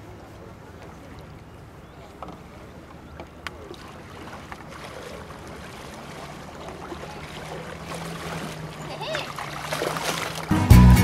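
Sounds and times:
paddle strokes splashing: 0:00.0 - 0:10.5.

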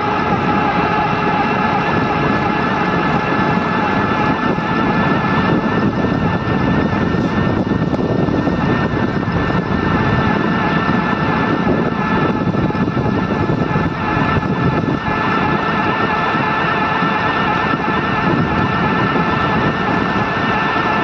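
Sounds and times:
road noise: 0:00.0 - 0:21.0
wind rushing over microphone: 0:00.0 - 0:21.0.

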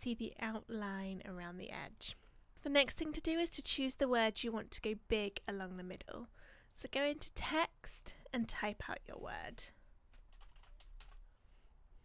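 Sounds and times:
computer keyboard typing: 0:10.1 - 0:11.2.

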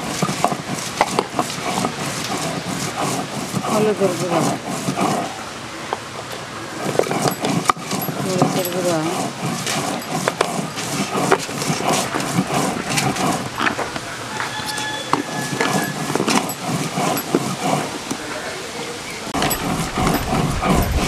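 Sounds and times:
stone roller grinding on stone: 0:00.0 - 0:05.4, 0:06.8 - 0:18.2, 0:19.3 - 0:21.0
background voices: 0:01.3 - 0:21.0
hands working spice into fish: 0:07.0 - 0:13.7.

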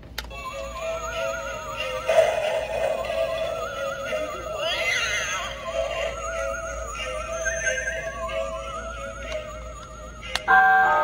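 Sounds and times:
ghostly warbling melody: 0:00.4 - 0:11.0.

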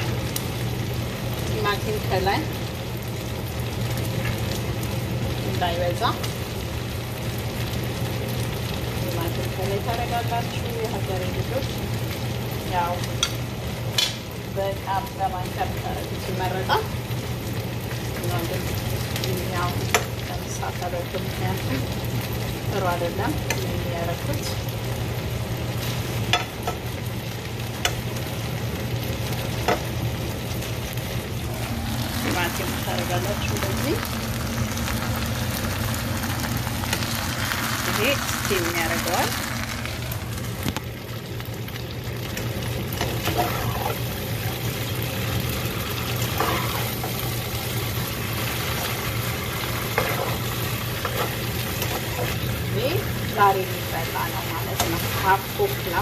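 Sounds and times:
vegetables sizzling in a pan: 0:00.0 - 0:56.0
utensil stirring and clicking on pan: 0:43.0 - 0:44.5, 0:46.0 - 0:52.8, 0:54.6 - 0:56.0.

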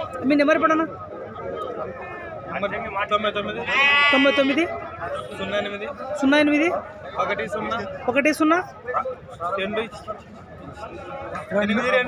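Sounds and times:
sheep bleating: 0:03.6 - 0:04.7.

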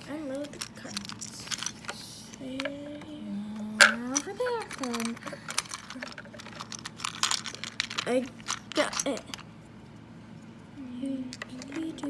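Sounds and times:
plastic toys clicking and tapping: 0:00.2 - 0:03.1, 0:03.7 - 0:09.5, 0:11.3 - 0:12.0.

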